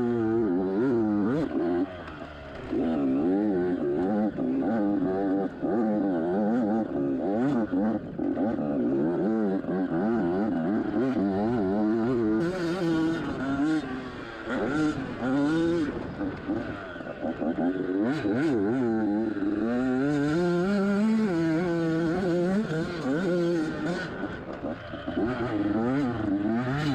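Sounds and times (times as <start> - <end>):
dirt bike engine revving: 0.0 - 26.9.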